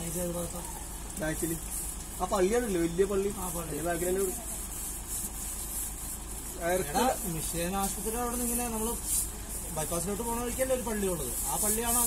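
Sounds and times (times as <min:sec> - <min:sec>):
stiff brush scrubbing wet hide: 0:00.0 - 0:12.0.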